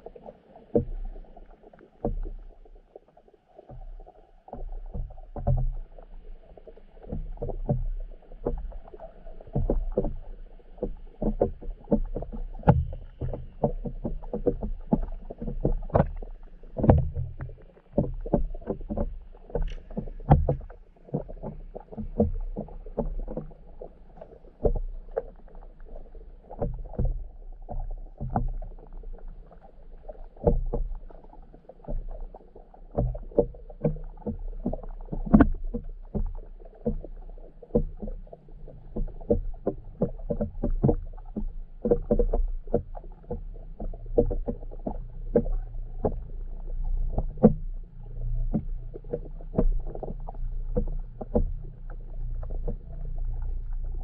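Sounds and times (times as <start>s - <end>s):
underwater low rumble: 0.0s - 54.0s
water sloshing: 0.0s - 54.0s.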